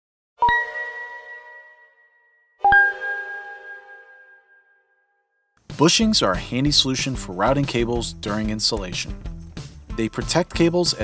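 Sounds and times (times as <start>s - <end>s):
struck chime notes ringing: 0.4s - 5.2s.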